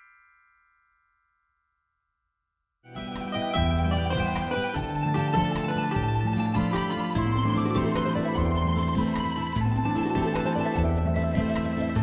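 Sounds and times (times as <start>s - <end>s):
ringing chime-like note: 0.0s - 2.1s.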